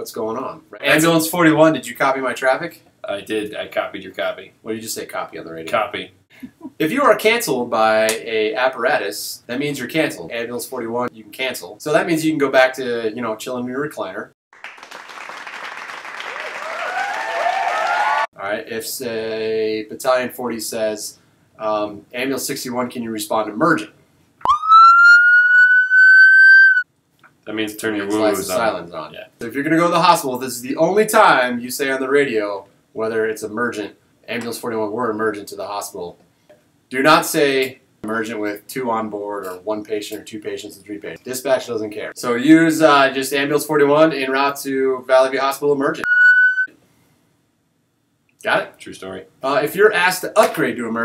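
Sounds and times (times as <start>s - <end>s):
ambulance siren: 24.4s - 26.8s
high electronic beep: 46.0s - 46.7s.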